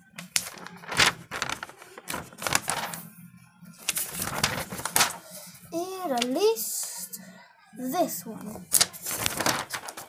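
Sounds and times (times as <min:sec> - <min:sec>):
paper crackle: 0:00.0 - 0:03.1, 0:03.7 - 0:06.6, 0:08.5 - 0:10.0
paper pages rustling: 0:00.0 - 0:03.1, 0:03.7 - 0:06.9, 0:08.4 - 0:10.0.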